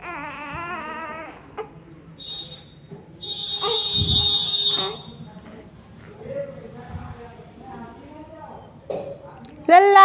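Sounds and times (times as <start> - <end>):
shrill whistle-like tone: 2.2 - 5.2.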